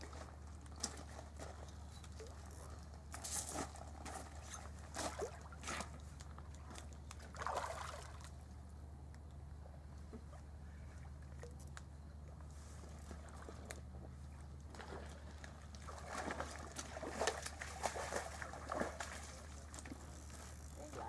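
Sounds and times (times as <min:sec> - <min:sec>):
water splashing and sloshing: 0:00.0 - 0:08.7, 0:10.3 - 0:11.8, 0:12.6 - 0:21.0.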